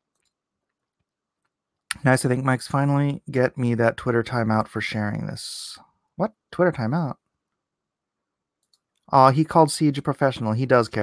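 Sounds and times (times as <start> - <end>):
computer mouse clicks: 0.1 - 1.6, 8.6 - 9.1
person speaking: 1.9 - 7.2, 9.0 - 11.0.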